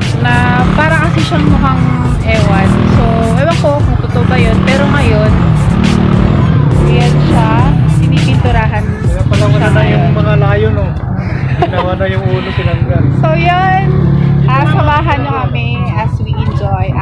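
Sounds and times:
woman talking: 0.0 - 5.4, 6.8 - 10.0, 13.2 - 17.0
background music: 0.0 - 17.0
steady low rumble: 0.0 - 17.0.

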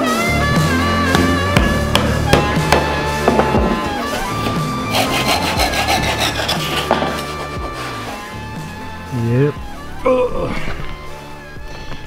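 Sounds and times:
handsaw cutting wood: 4.0 - 8.4.

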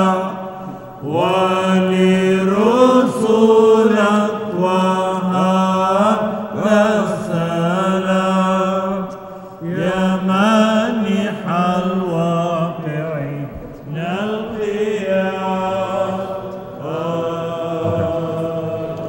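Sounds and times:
held vocal drone: 0.0 - 19.0
ornamented chanted melody: 0.0 - 19.0.

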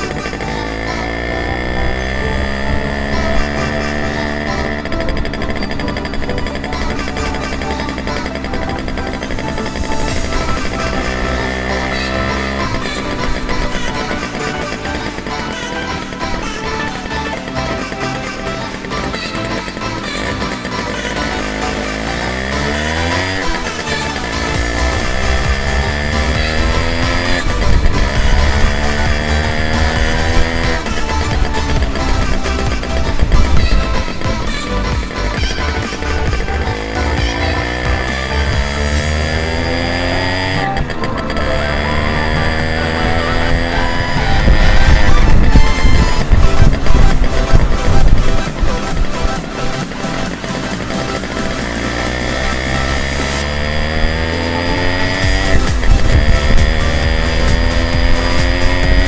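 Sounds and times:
electronic music with steady beat: 0.0 - 59.0
two-stroke moped engine running: 0.0 - 59.0.

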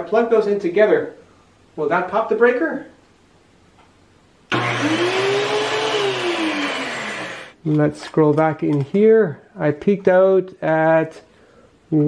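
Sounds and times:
power tool motors spinning up: 4.5 - 7.6.

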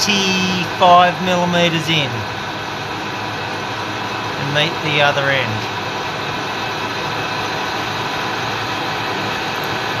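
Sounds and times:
metal lathe humming: 0.0 - 10.0.

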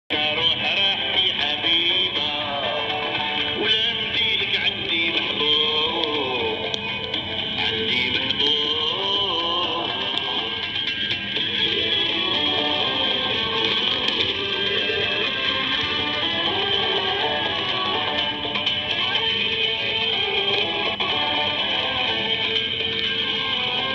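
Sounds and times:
music over radio: 0.1 - 23.9.

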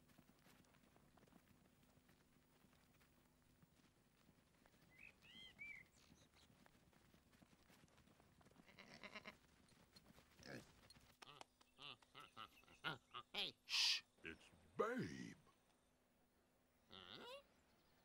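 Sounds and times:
faint sheep bleats: 8.6 - 9.4.

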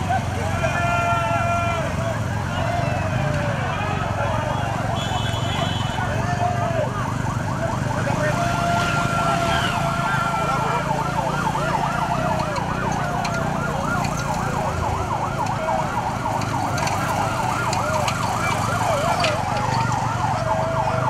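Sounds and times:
sirens yelping: 0.0 - 21.0
low vehicle rumble: 5.9 - 21.0.

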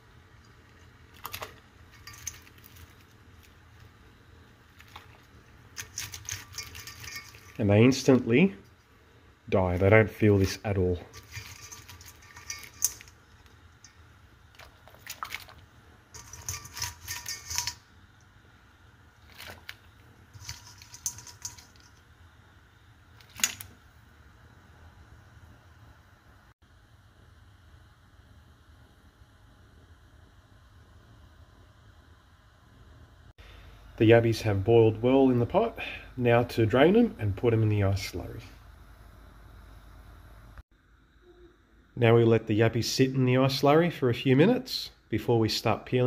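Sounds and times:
low steady background: 0.0 - 46.0
crayfish shells scraping on metal: 1.2 - 3.5, 4.8 - 7.8, 10.2 - 14.0, 14.6 - 17.9, 19.2 - 22.0.

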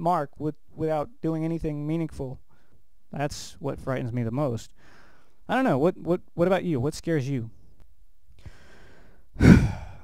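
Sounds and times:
man breathing in quietly: 2.5 - 2.8, 4.8 - 5.4, 8.4 - 10.0
man sighing heavily: 8.5 - 10.0.

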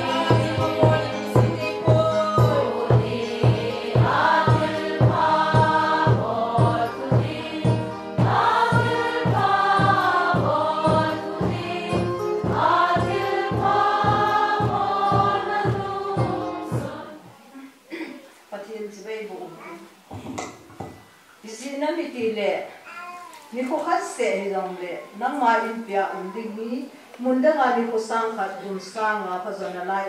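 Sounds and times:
steady beat: 0.0 - 17.2
congregation singing a hymn: 0.0 - 17.3.

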